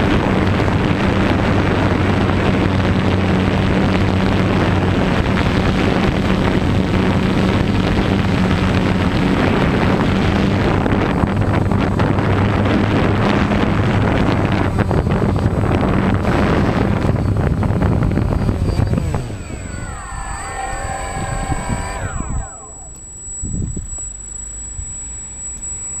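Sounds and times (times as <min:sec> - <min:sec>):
drone motors and propellers: 0:16.3 - 0:26.0.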